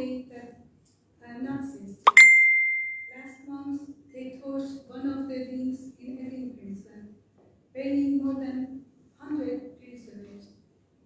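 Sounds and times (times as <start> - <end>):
speech: 0.0 - 0.6, 1.2 - 2.0, 3.1 - 7.2, 7.8 - 10.6
bright ringing ding: 2.1 - 3.2.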